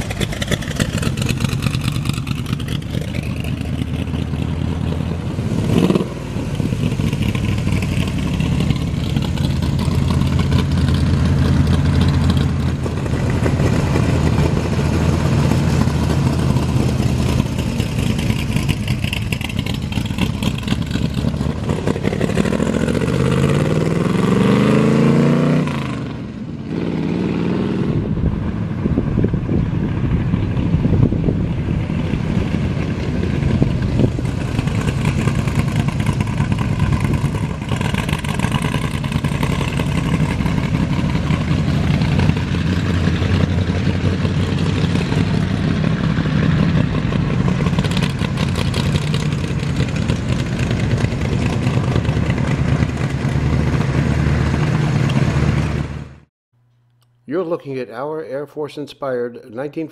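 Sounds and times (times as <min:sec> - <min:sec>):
loud truck engine revving: 0:00.0 - 0:28.6, 0:29.6 - 0:56.3.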